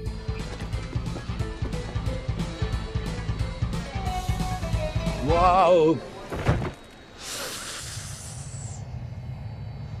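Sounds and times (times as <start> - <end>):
low airport rumble: 0.0 - 10.0
body falling onto tarmac: 6.2 - 6.8
high hiss: 6.9 - 10.0.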